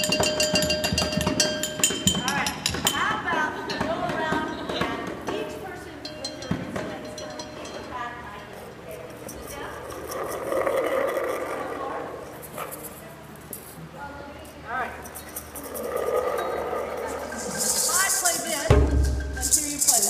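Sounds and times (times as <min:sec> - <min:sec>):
bell-like clinks: 0:00.0 - 0:03.1
voices: 0:01.4 - 0:20.0
hand drum strikes: 0:17.3 - 0:20.0.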